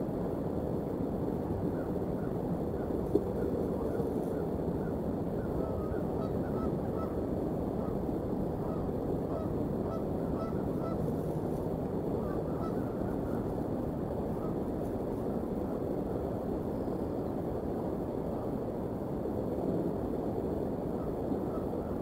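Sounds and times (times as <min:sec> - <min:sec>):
low background rumble: 0:00.0 - 0:22.0
distant geese honking: 0:01.7 - 0:07.2, 0:08.6 - 0:11.3, 0:12.2 - 0:13.5, 0:14.3 - 0:14.6, 0:21.0 - 0:22.0.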